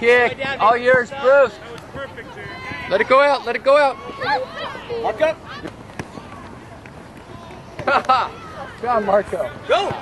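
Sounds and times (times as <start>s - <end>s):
faint distant voices calling: 0.0s - 10.0s.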